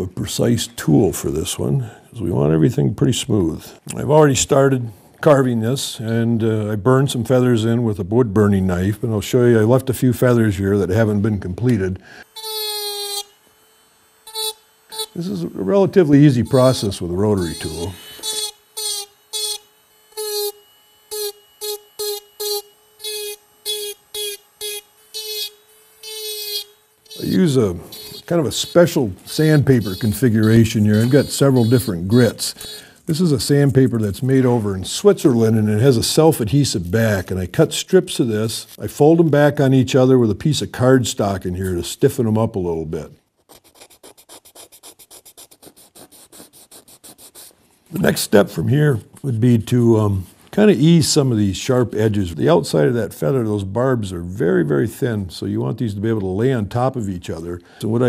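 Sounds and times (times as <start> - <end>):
rotary tool whining on wood: 10.2 - 38.8
sandpaper sanding wood: 14.2 - 19.6, 20.2 - 35.5, 43.4 - 48.4.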